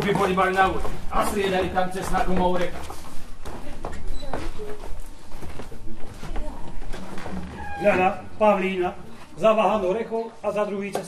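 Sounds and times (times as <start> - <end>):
footsteps on stage floor: 0.0 - 8.0.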